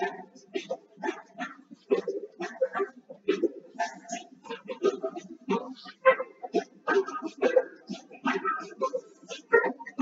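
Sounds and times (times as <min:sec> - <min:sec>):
person vocalising choppy syllables: 0:00.0 - 0:10.0.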